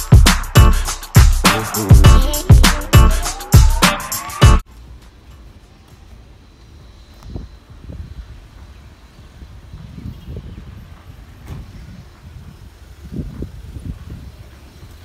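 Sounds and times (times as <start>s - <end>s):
wind rumble on microphone: 7.1s - 15.0s.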